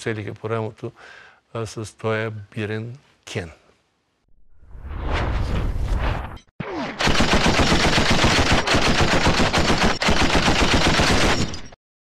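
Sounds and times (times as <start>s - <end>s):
whoosh: 4.4s - 6.5s
machine-gun fire: 7.0s - 11.8s.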